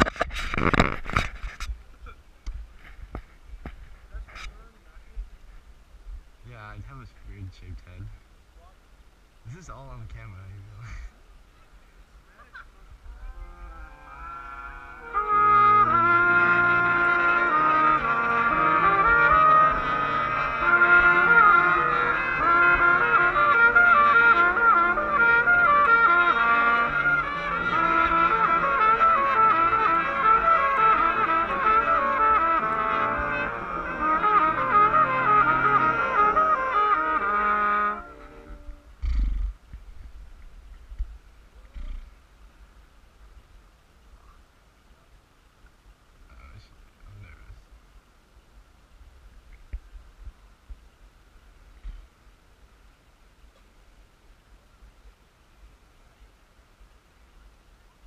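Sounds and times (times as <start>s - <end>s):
brass band sustained chord: 13.3s - 38.9s.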